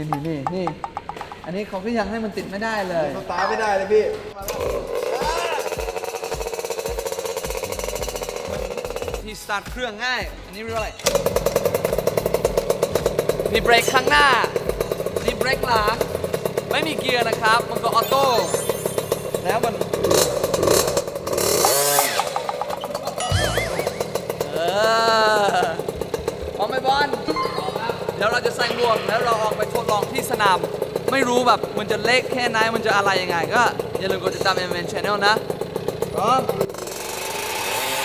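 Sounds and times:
dirt bike engine putter: 0:00.0 - 0:01.6, 0:10.8 - 0:24.6
mini dirt bike engine idling: 0:04.4 - 0:09.4, 0:11.0 - 0:38.0
man shouting: 0:05.1 - 0:05.7
wobbling electronic sound effect: 0:17.8 - 0:19.7, 0:21.9 - 0:24.8.

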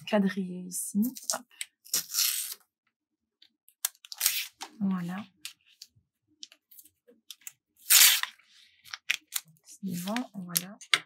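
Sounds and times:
paper tearing rip: 0:01.9 - 0:02.6, 0:04.1 - 0:04.6, 0:07.8 - 0:08.4.

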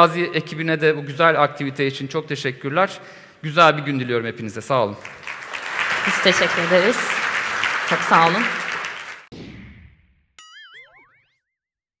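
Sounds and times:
applause: 0:05.0 - 0:09.3.

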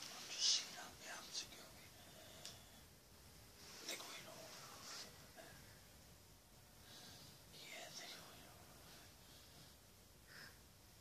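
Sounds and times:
man whispering: 0:00.0 - 0:02.8, 0:03.7 - 0:05.6, 0:07.4 - 0:09.2.

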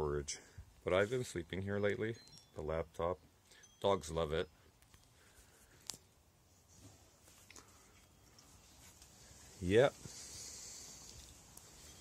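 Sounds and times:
high-pitched outdoor hiss: 0:00.0 - 0:12.0.

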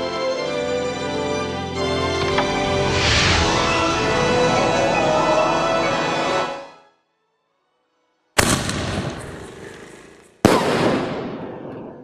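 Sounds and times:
background music: 0:00.0 - 0:08.4.

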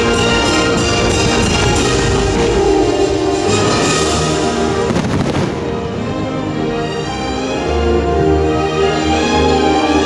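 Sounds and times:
orchestral music: 0:00.0 - 0:10.0
firework bangs and crackles: 0:04.7 - 0:06.0.

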